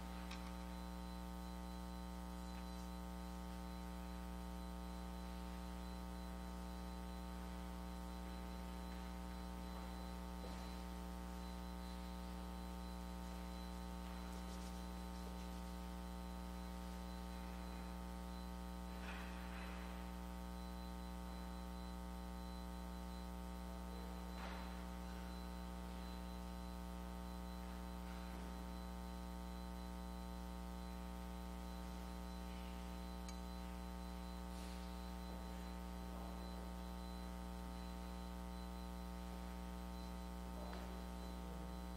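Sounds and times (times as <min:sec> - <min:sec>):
electrical mains hum: 0:00.0 - 0:41.9.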